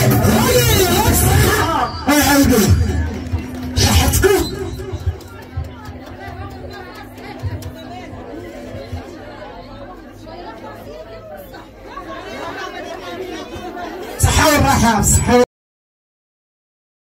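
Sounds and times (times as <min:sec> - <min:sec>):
low hum: 0:00.0 - 0:12.3
people chattering: 0:00.0 - 0:15.4
woman speaking through loudspeaker: 0:12.7 - 0:15.5.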